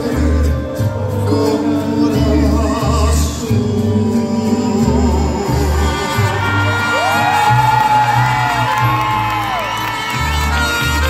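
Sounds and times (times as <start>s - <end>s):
mariachi band playing: 0.0s - 11.0s
crowd cheering and whooping: 5.9s - 11.0s.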